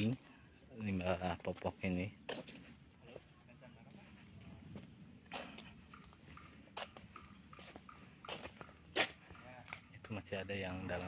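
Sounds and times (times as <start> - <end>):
footsteps on dry grass and leaves: 1.5 - 9.8.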